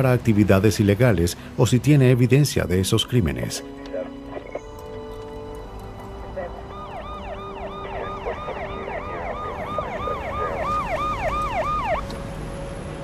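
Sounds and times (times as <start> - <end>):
road rumble of moving car: 0.0 - 13.0
police siren yelping: 6.2 - 12.1.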